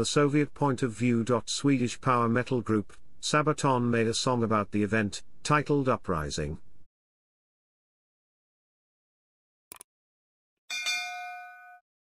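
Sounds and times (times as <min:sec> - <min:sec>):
notification bell chime: 0:10.7 - 0:11.8.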